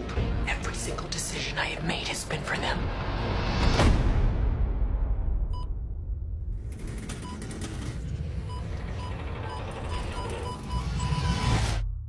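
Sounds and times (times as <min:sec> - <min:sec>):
low rumble: 0:00.4 - 0:12.0.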